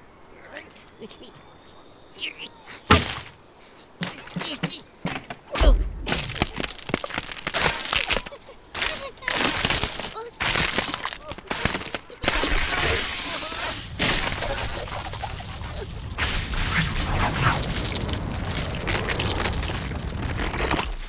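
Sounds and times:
cartoon ground cracking: 0:04.0 - 0:21.0.

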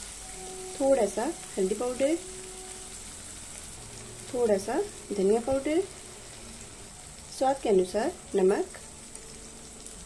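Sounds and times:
onion and tomato sizzling in oil: 0:00.0 - 0:10.0.

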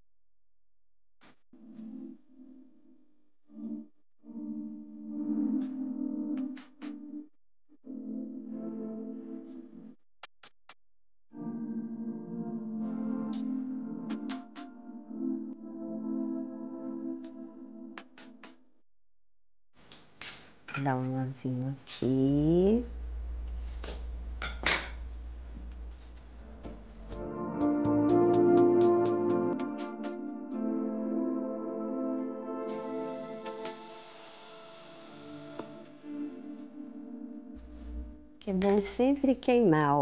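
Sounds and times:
soft music with sustained tones: 0:03.5 - 0:07.2, 0:07.9 - 0:09.9, 0:11.4 - 0:18.3, 0:25.9 - 0:39.6.

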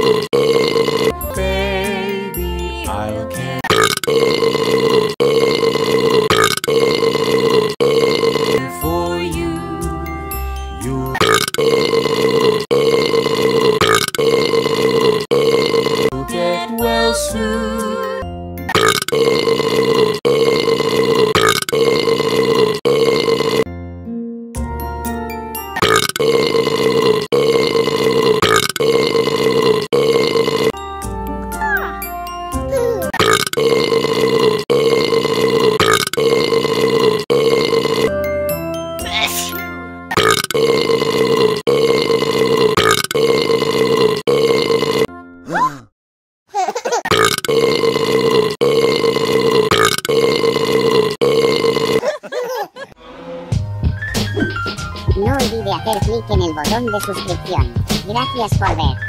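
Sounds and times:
long loud burps: 0:00.0 - 0:01.2, 0:03.6 - 0:08.7, 0:11.1 - 0:16.2, 0:18.7 - 0:23.7, 0:25.8 - 0:30.8, 0:33.1 - 0:38.1, 0:40.1 - 0:45.6, 0:47.1 - 0:52.2
backing music: 0:01.1 - 0:03.6, 0:30.8 - 0:32.8, 0:53.0 - 0:59.0
children's song backing music: 0:01.2 - 0:03.7, 0:08.8 - 0:11.0, 0:16.1 - 0:18.3, 0:54.6 - 0:59.0.

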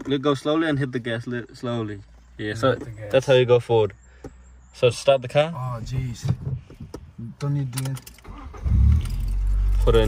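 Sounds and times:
car engine starting and idling: 0:05.6 - 0:10.0.

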